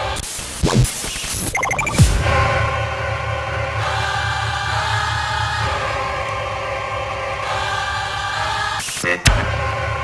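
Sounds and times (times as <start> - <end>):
electronic sound effects: 0.5 - 2.2
stuttering high blips: 0.6 - 2.1.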